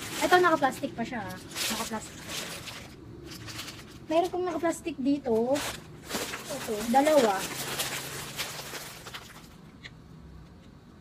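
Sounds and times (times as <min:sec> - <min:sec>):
plastic bags rustling: 0:00.0 - 0:09.7.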